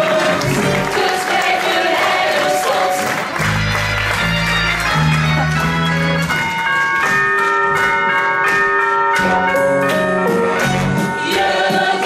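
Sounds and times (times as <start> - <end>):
loud musical theatre music: 0.0 - 8.6, 9.2 - 12.0.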